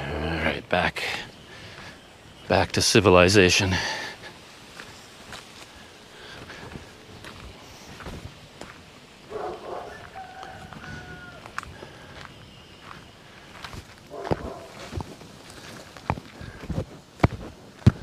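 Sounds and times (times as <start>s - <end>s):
footsteps on concrete: 6.4s - 8.8s, 9.4s - 18.0s.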